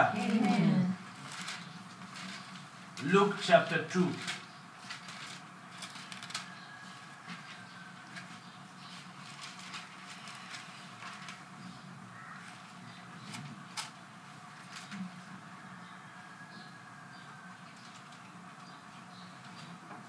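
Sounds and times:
faint steady hum: 0.0s - 20.0s
pages rustling: 0.2s - 3.2s, 4.0s - 11.5s.

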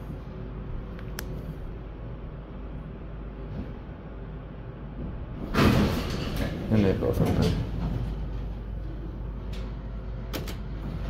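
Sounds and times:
elevator car rumble and hum: 0.0s - 11.0s.

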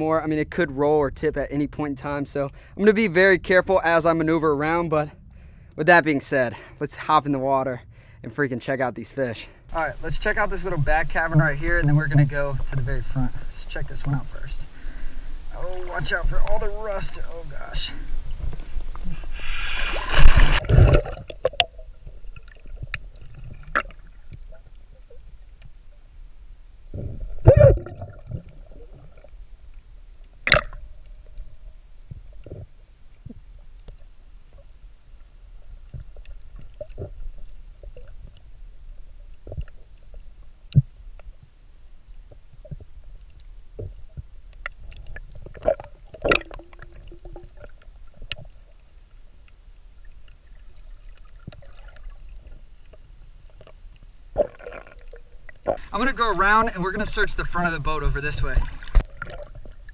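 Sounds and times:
muffled underwater rumble: 9.7s - 59.9s
sharp underwater clicks: 30.4s - 31.1s, 42.6s - 48.5s.

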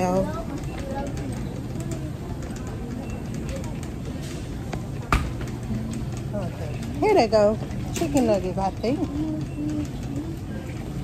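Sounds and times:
low wordless humming voice: 9.0s - 11.0s.

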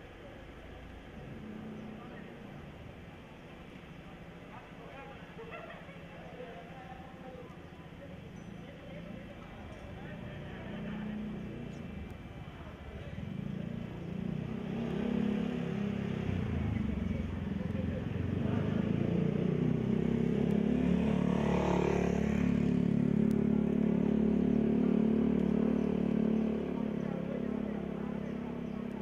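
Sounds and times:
people talking: 0.0s - 29.0s
motorcycle engine running: 8.6s - 29.0s.

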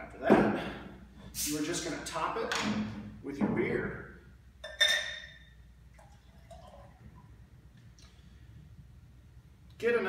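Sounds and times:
glass clinking: 4.6s - 5.6s
beer pouring into a glass: 5.9s - 7.3s.

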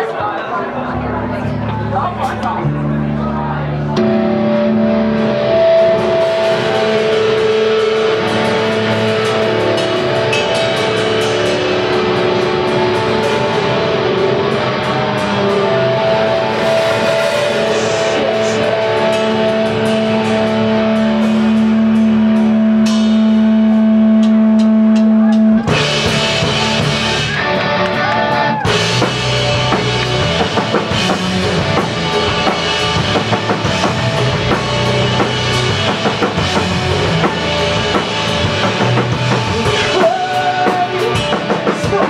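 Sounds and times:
amplified electric guitars: 0.0s - 42.0s.

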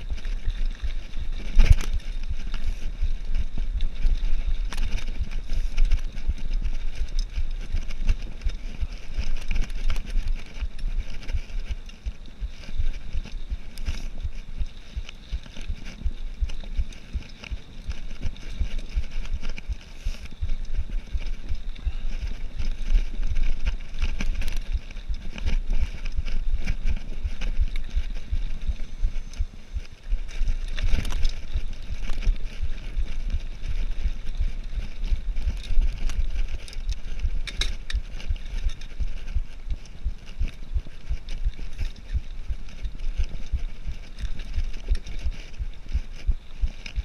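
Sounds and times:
bike rattling and clattering: 0.0s - 47.0s
low rumble: 0.0s - 47.0s.

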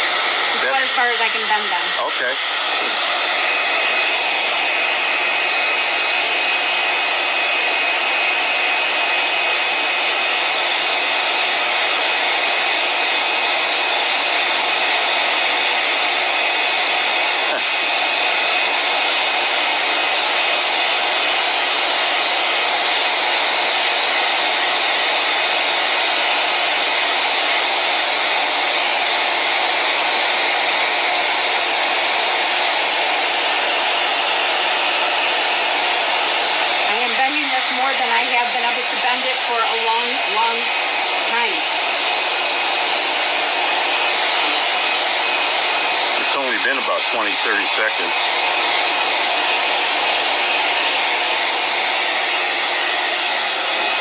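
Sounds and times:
fan blowing air: 27.3s - 54.0s.

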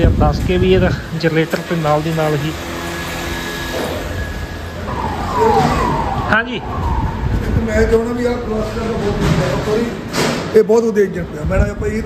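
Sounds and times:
workshop machinery humming: 0.8s - 7.3s.

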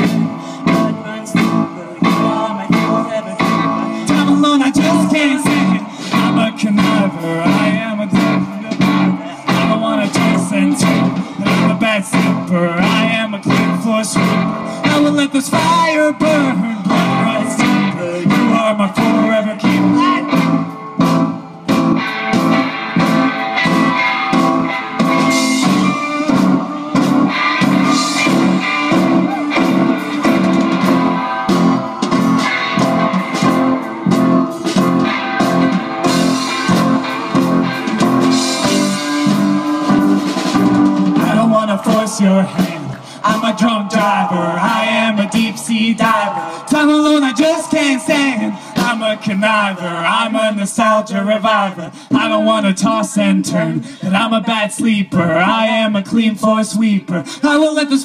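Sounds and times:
live rock band playing: 0.0s - 55.4s
guitars strummed: 0.0s - 55.9s.

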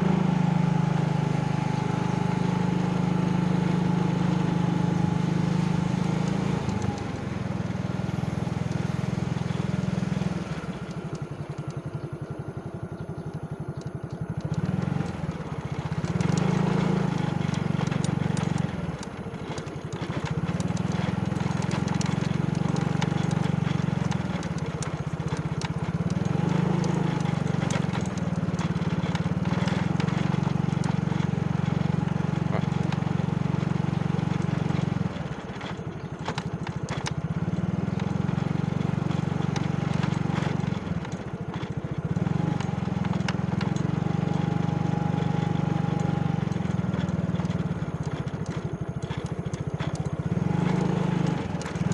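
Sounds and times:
small motorcycle engine running: 0.0s - 51.9s.

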